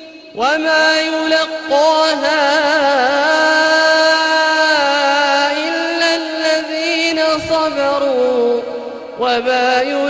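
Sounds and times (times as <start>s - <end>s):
man chanting melodically: 0.0s - 10.0s.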